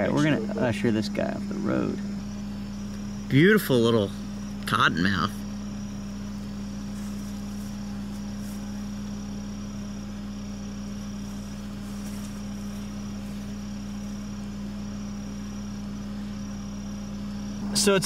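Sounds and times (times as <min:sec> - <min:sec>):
insects trilling: 0:00.0 - 0:18.0
steady low hum: 0:00.0 - 0:18.0.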